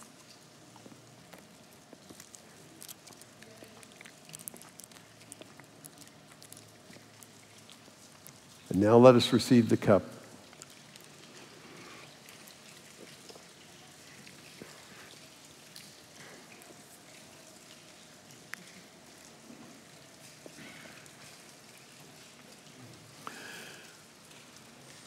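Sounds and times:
communion cups clicking and crinkling: 0.0 - 9.0.

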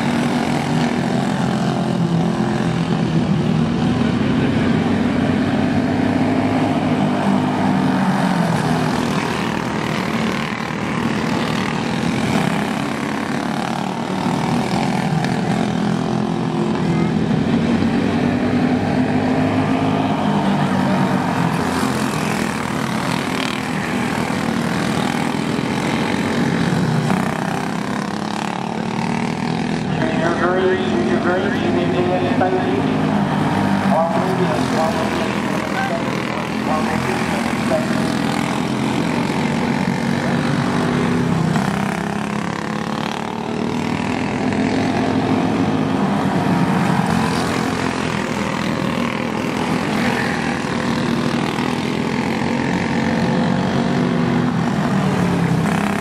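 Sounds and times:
kart engines racing: 0.0 - 56.0
voices: 29.8 - 39.3.

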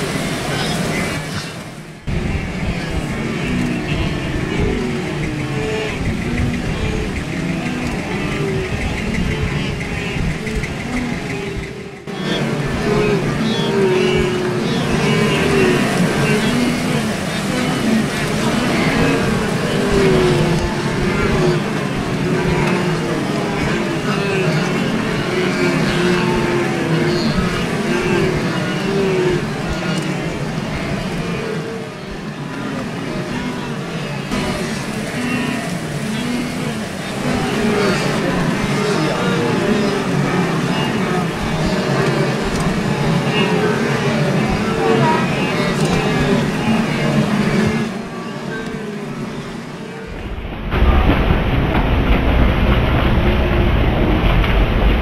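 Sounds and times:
wildebeest herd grunting: 0.0 - 50.2
water splashing: 0.0 - 55.0.

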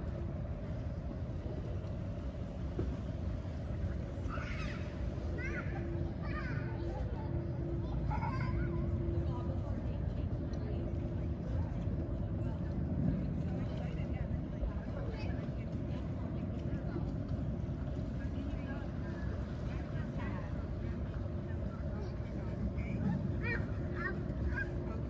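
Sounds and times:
low mechanical rumble: 0.0 - 25.0
people talking: 2.8 - 25.0.

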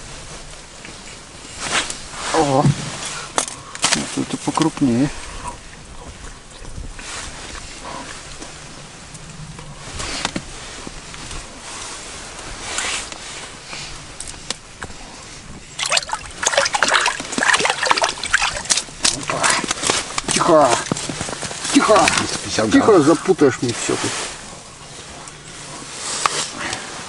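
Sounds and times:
water splashing from thrashing fish: 15.8 - 20.9.

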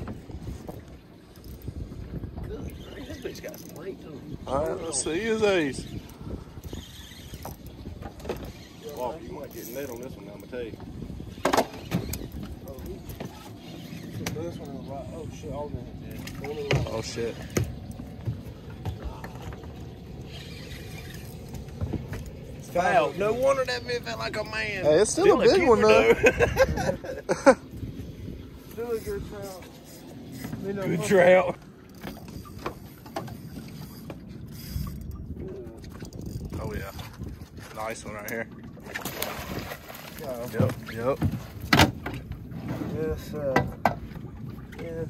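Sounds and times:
water noise around boat: 0.0 - 45.0
wind: 0.0 - 45.0.

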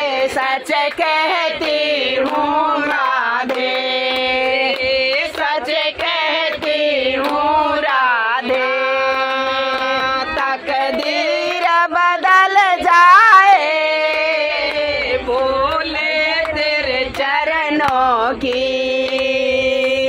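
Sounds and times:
hand clapping: 0.0 - 20.0
women singing together: 0.0 - 20.0.

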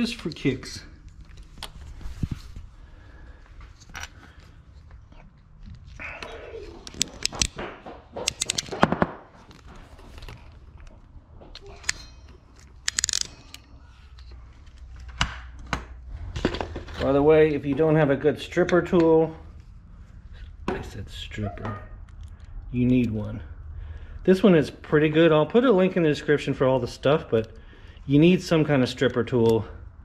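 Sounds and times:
wire crimping tool clicking: 8.3 - 8.7, 12.6 - 13.7.

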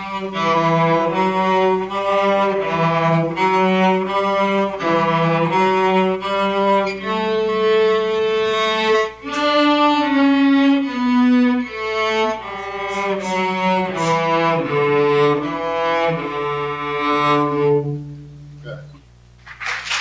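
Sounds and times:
cellos playing folk melody: 0.0 - 19.0.

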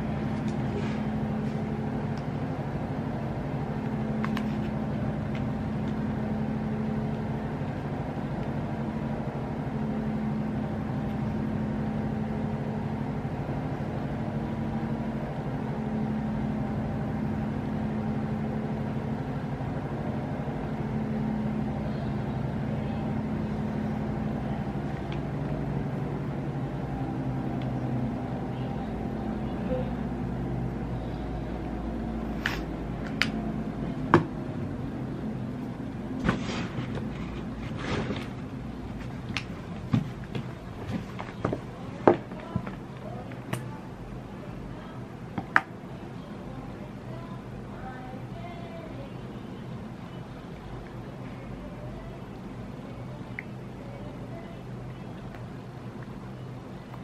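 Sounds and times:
low droning hum: 0.0 - 57.0.

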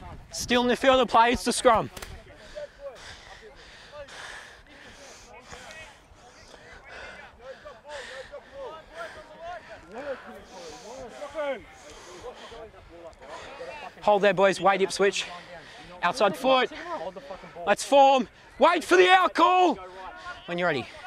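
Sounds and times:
players calling to each other: 0.5 - 21.0.

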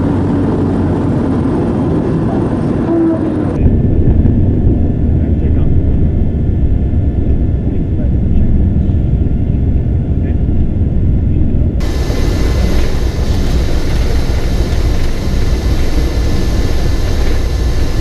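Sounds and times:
propeller plane engines droning: 0.0 - 18.0.

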